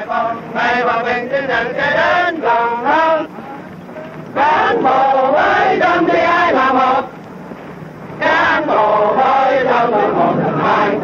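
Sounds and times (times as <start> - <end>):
men chanting in unison: 0.0 - 3.5, 4.4 - 7.1, 8.2 - 11.0.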